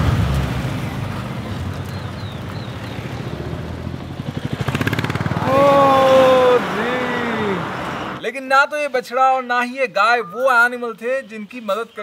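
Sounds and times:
vehicle engine and road noise: 0.0s - 8.3s.

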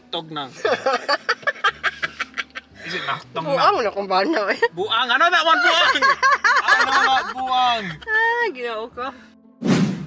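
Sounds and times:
person laughing: 0.6s - 2.7s, 5.7s - 8.1s.

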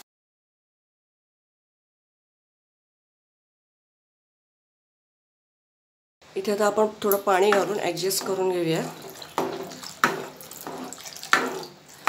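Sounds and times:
ladle stirring: 7.0s - 12.0s
water pouring into pan: 7.5s - 12.0s.

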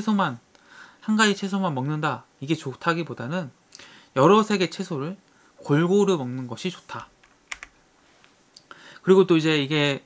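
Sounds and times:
soft breath-like hiss: 0.5s - 1.1s, 3.7s - 4.2s, 5.2s - 5.6s, 8.0s - 9.1s
person speaking: 4.2s - 7.8s.

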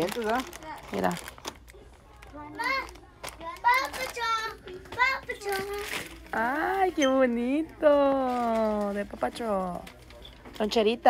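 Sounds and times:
young child talking: 1.8s - 6.2s.

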